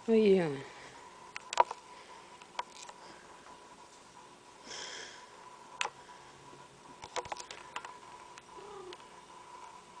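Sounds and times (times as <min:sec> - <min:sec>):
faint steady hum: 0:00.0 - 0:10.0
cat soft low call: 0:08.6 - 0:09.0.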